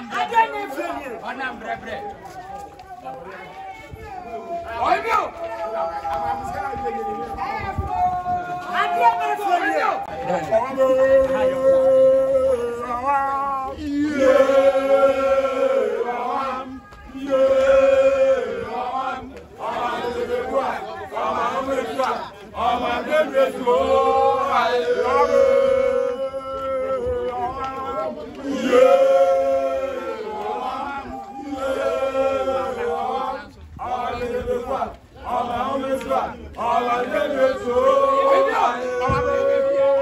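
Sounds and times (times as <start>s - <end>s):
men chanting in unison: 8.4s - 40.0s.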